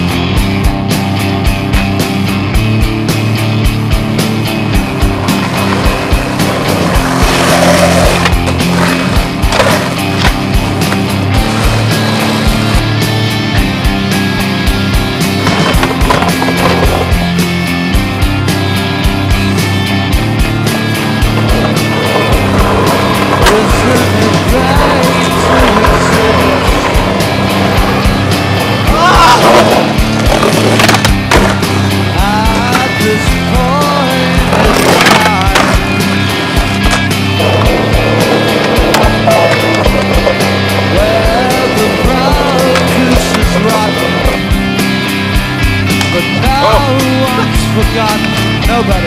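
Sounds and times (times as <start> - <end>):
music with steady beat: 0.0 - 49.0
skateboard wheels rolling on pavement: 0.0 - 49.0
skateboard pops and landings: 7.5 - 11.1, 29.3 - 31.9.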